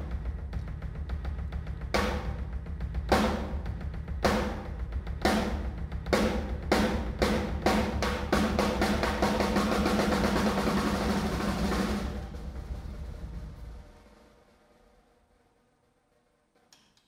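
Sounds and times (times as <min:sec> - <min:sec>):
drum kit playing: 0:00.0 - 0:14.2
drum roll: 0:00.0 - 0:16.7.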